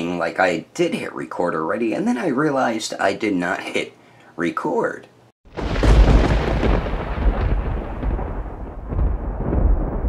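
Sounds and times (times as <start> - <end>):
deep crackling rumble: 5.5 - 10.0.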